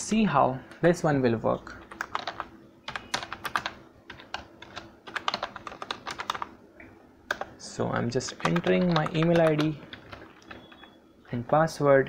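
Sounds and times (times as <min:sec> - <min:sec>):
typing on computer keyboard: 0:01.8 - 0:06.5, 0:07.3 - 0:07.6, 0:08.2 - 0:11.6.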